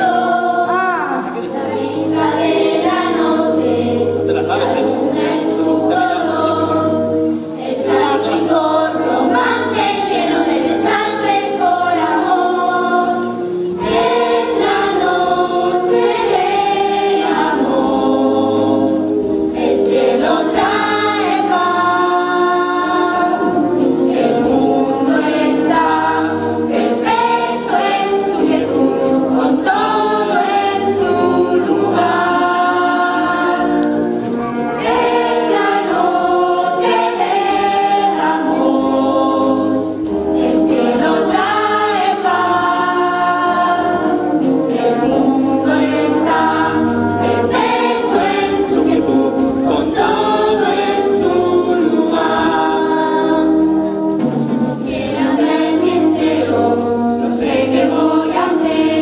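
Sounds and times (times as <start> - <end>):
children and young people singing: 0.0 - 59.0
live band accompaniment: 0.0 - 59.0.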